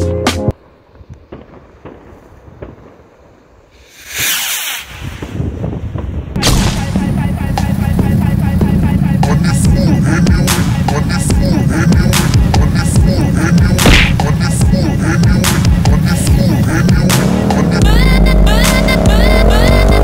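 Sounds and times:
firework rocket hissing whoosh: 3.7 - 6.8
music with steady beat: 6.5 - 20.0.

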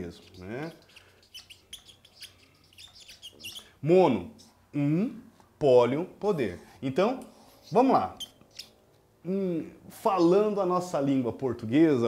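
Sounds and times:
marker squeaking on paper: 0.0 - 4.6, 7.3 - 8.8.

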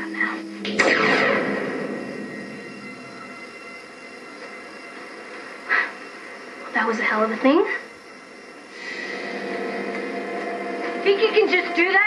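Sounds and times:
television soundtrack noise rush: 0.0 - 12.0.

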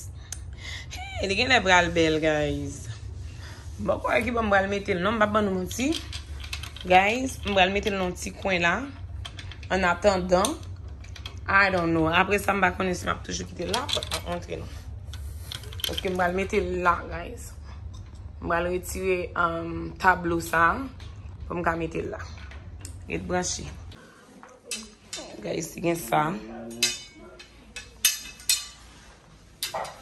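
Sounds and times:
steady low hum: 0.0 - 30.0
metal bars clinking together: 13.6 - 14.4, 24.7 - 25.4, 26.6 - 29.0, 29.6 - 30.0.

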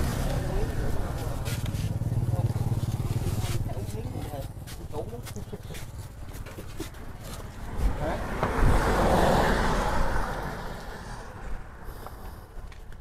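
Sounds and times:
road vehicle passing: 0.0 - 13.0.

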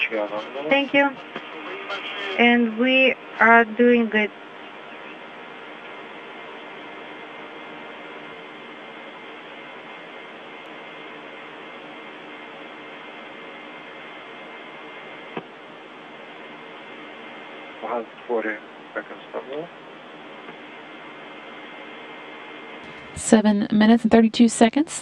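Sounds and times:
radio channel hiss: 0.0 - 23.6
faint steady hum: 0.0 - 25.0.

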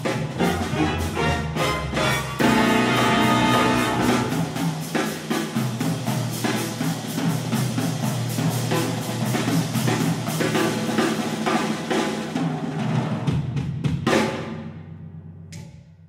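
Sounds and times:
jazz drum kit: 0.0 - 16.0.

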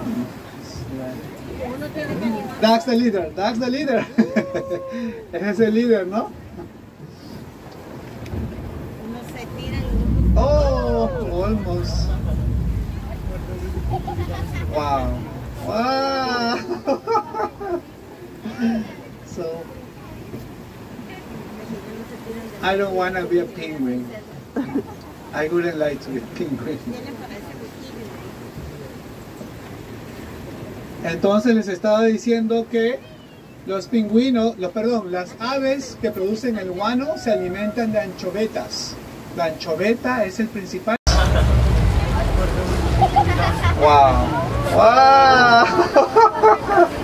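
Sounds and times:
waves washing against rocks: 0.0 - 31.5, 35.4 - 47.0
wind: 0.0 - 47.0
wind buffeting microphone: 7.9 - 16.3, 41.1 - 45.2
boat engine running: 8.3 - 16.1, 41.1 - 45.2.

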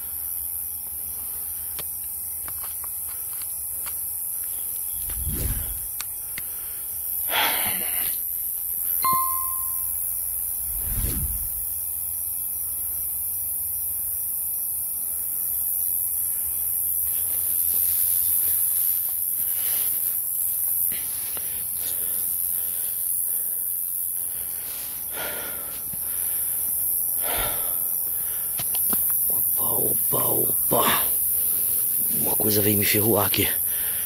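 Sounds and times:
steady high hiss: 0.0 - 34.0
bell-like ding: 9.0 - 10.0.

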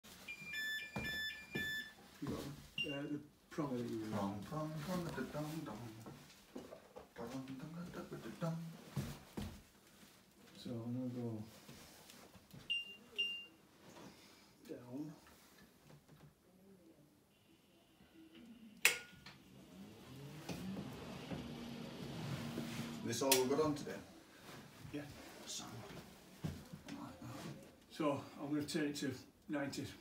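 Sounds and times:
two-tone electronic beeping: 0.3 - 2.0.

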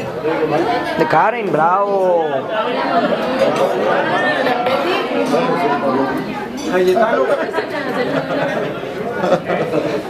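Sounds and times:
overlapping chatter in a hall: 0.0 - 10.0.

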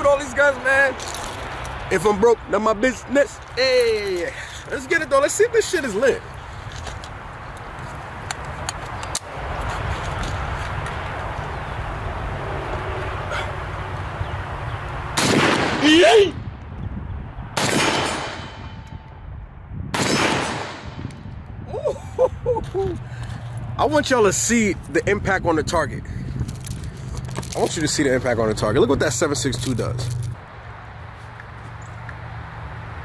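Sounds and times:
pistol gunshots with echo: 15.2 - 16.2, 17.6 - 19.1, 19.9 - 21.1.

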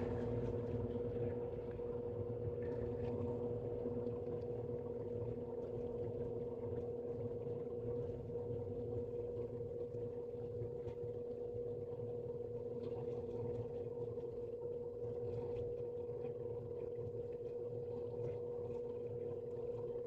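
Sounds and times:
steady machine hum: 0.0 - 20.0.

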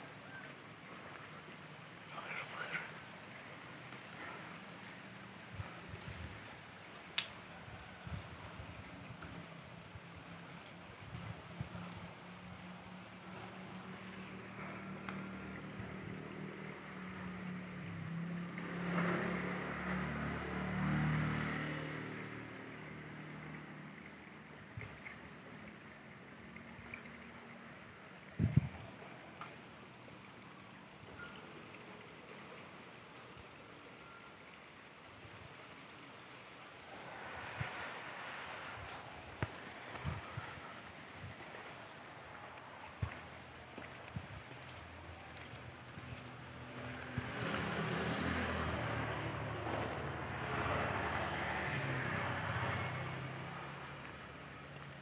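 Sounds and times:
vehicle engine passing: 13.4 - 24.4, 36.4 - 41.8, 46.3 - 54.5.

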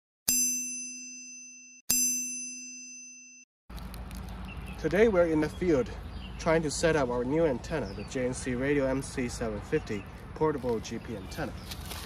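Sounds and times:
bell-like chime dings: 0.3 - 3.4
outdoor background noise: 3.7 - 12.0.

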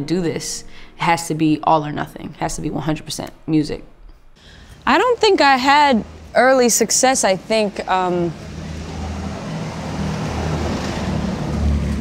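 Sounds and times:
city street traffic: 4.4 - 12.0.

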